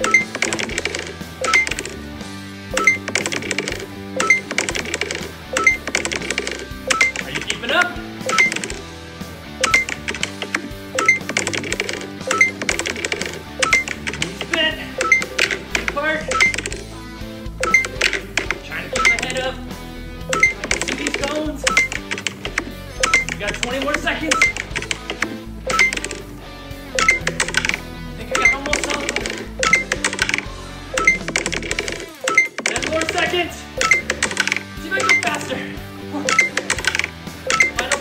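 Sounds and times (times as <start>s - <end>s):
workout music with steady beat: 9.6s - 19.4s, 26.9s - 38.0s.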